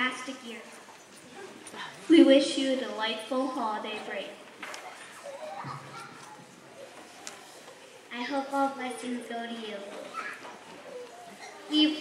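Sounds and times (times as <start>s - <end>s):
girl speaking into a microphone: 0.0s - 0.8s, 1.8s - 4.4s, 8.1s - 10.5s, 11.4s - 12.0s
murmur of children's voices: 0.0s - 12.0s
shuffling: 3.9s - 8.8s.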